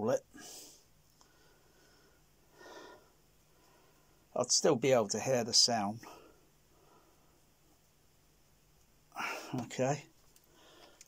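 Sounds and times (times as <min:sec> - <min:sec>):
faint steady hum: 0:00.0 - 0:11.0
soft breath of air: 0:00.3 - 0:04.3, 0:10.4 - 0:11.0.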